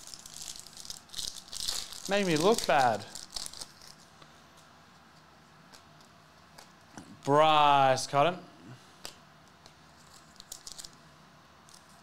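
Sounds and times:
foil wrapper crinkling: 0.0s - 4.1s, 10.0s - 11.0s.

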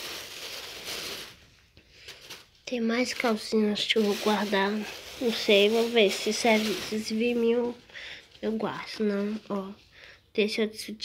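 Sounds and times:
plastic bag rustling and crinkling: 0.0s - 10.0s.

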